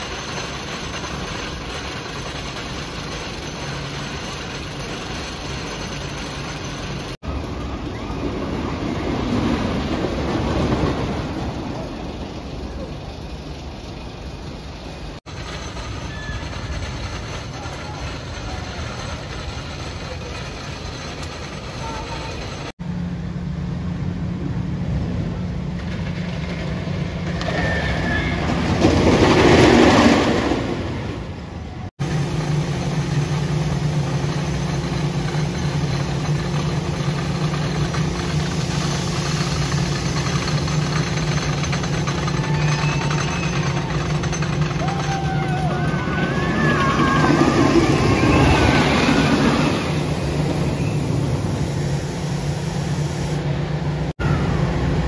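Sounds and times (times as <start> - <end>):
roller coaster train rumbling: 0.0 - 55.0.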